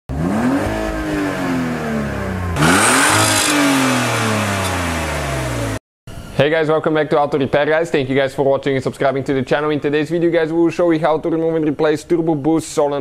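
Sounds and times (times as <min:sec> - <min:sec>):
car engine revving: 0:00.1 - 0:05.8.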